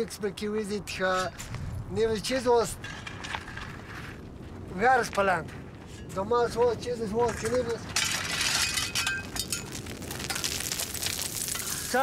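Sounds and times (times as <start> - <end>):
gravel and stones sliding: 1.0 - 12.0.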